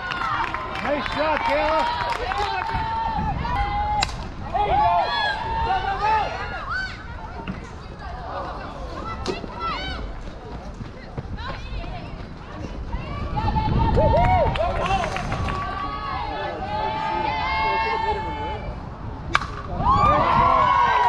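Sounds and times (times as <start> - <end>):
softball bat hitting ball: 19.3 - 19.7.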